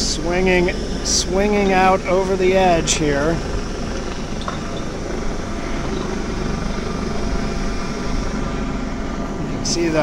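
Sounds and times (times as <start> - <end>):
helicopter flying overhead: 0.0 - 10.0
low mechanical rumble: 0.0 - 10.0.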